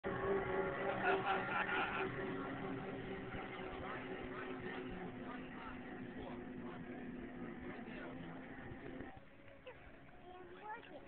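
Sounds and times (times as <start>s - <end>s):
speedboat engine running: 0.0s - 11.0s.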